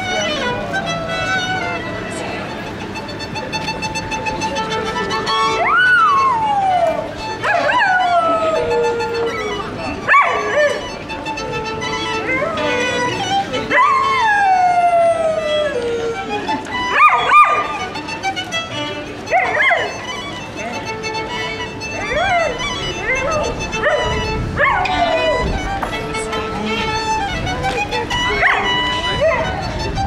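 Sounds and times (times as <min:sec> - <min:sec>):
violin notes: 0:00.0 - 0:30.0
dog howling: 0:05.6 - 0:11.0, 0:13.6 - 0:16.3, 0:16.9 - 0:17.9, 0:19.3 - 0:19.9, 0:22.0 - 0:25.4, 0:28.3 - 0:29.7
dog yipping: 0:07.4 - 0:08.6, 0:10.1 - 0:10.8, 0:16.9 - 0:17.7, 0:19.3 - 0:20.0, 0:22.1 - 0:25.4, 0:28.4 - 0:29.6.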